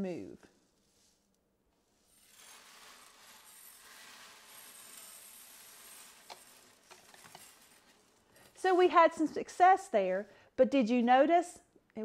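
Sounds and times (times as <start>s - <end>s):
rice pouring grainy hiss: 2.0s - 8.9s.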